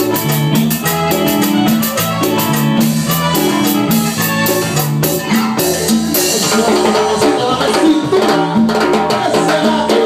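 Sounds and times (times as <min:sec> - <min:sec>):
bass line: 0:00.0 - 0:08.5
drums: 0:00.0 - 0:10.0.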